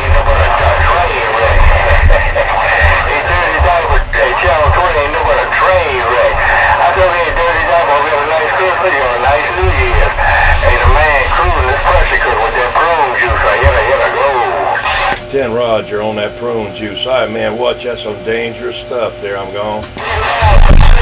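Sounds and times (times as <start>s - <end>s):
low pulsing rumble: 0.0s - 19.3s, 20.0s - 21.0s
garbled radio voices: 0.0s - 21.0s
radio static hiss: 0.0s - 21.0s.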